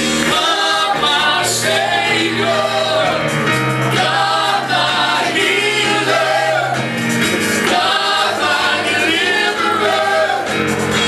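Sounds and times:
sustained instrumental backing: 0.0 - 11.0
voices singing gospel: 0.0 - 11.0.

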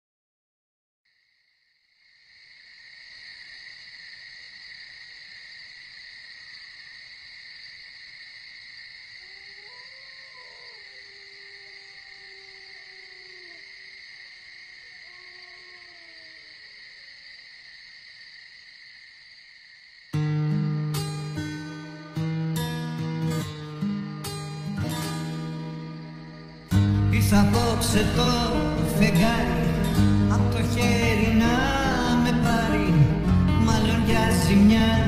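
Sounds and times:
crickets chirring: 1.1 - 35.0.

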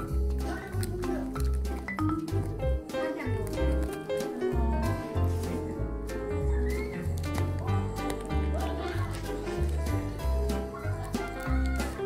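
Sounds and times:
bouncy background music: 0.0 - 12.0.

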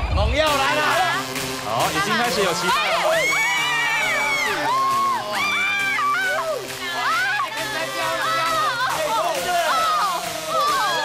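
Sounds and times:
music playing: 0.0 - 11.0
high-pitched whoops: 3.0 - 7.5.

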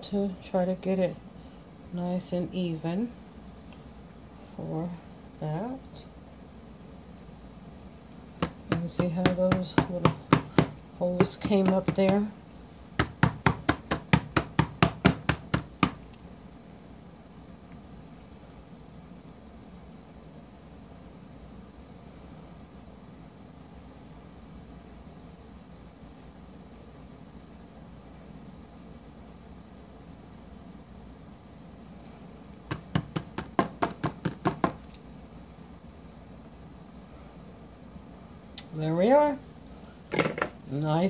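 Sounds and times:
knife tapping silicone mould: 8.4 - 12.3
silicone mold tapping on countertop: 8.4 - 12.3, 13.0 - 16.0, 32.7 - 34.8.

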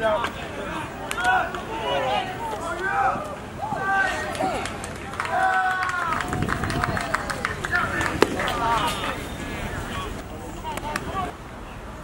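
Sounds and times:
voices calling out and shouting: 0.0 - 11.4.

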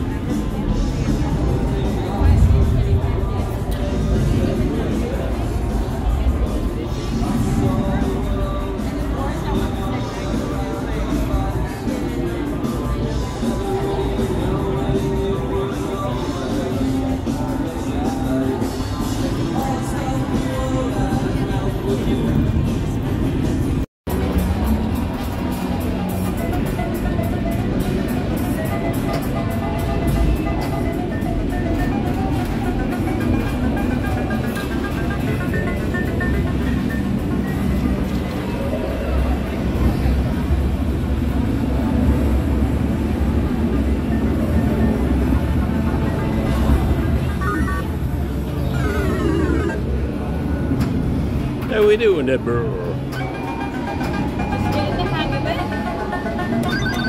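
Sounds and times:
background music: 0.0 - 50.7, 51.3 - 57.0
crowd chatter: 0.0 - 57.0.

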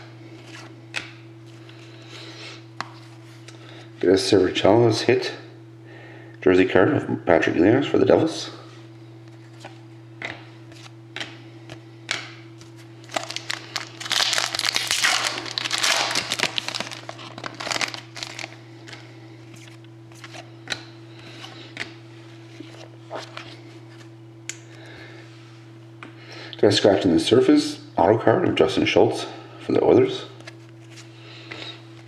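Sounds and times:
steady low hum: 0.0 - 32.0
foil wrapper crinkling: 12.7 - 18.6.

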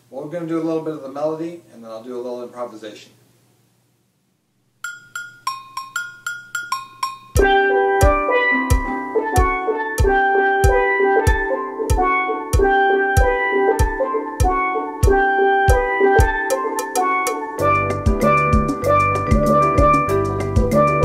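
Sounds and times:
steel pan melody: 4.8 - 21.0
bass drum beat: 7.4 - 16.5, 17.6 - 21.0
sustained chords: 7.4 - 21.0.

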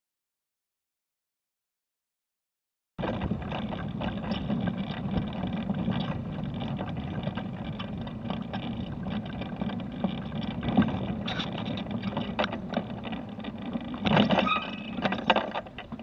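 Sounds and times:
knocks and rattles: 3.0 - 16.0
mobility scooter motor and wheels: 3.0 - 16.0.

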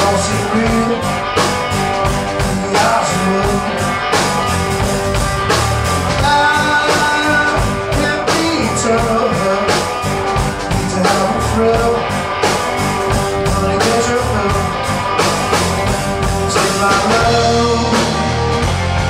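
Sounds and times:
drum kit steady beat: 0.0 - 19.0
electric guitar lead lines: 0.0 - 19.0.

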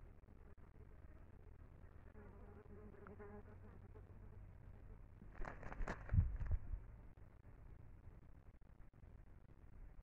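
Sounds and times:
faint insect buzz: 0.2 - 5.0.

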